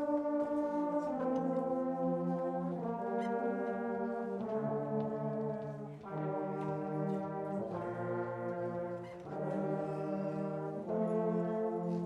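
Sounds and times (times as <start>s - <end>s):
low brass: 0.0s - 12.0s.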